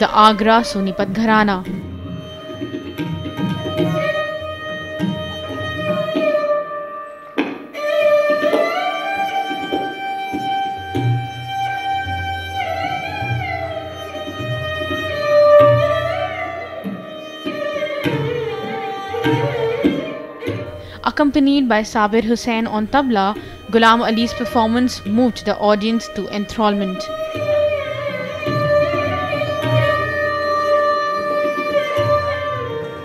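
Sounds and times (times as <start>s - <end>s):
sarangi bowed melody: 0.0s - 33.0s
deep tabla strokes: 0.4s - 21.7s.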